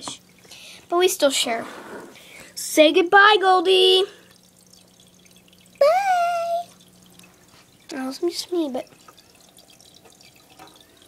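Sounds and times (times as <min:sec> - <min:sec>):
water trickling and dripping: 0:00.0 - 0:11.0.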